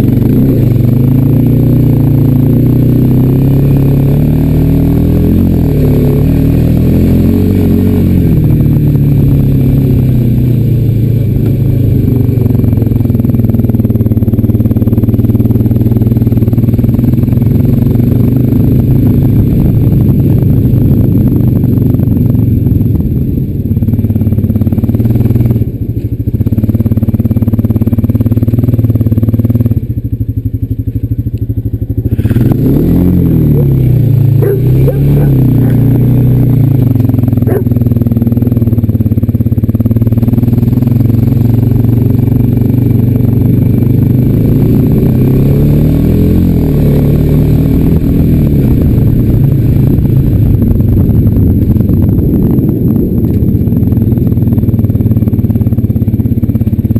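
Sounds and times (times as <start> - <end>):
atv engine running: 0.0 - 56.9.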